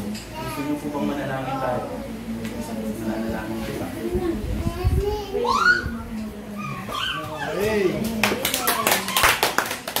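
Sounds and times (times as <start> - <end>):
small audience clapping: 7.9 - 10.0.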